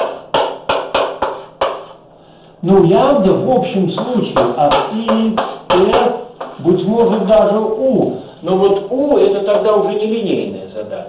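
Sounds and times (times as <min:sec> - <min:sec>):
chalk tapping on blackboard: 0:00.0 - 0:02.0, 0:03.9 - 0:07.5.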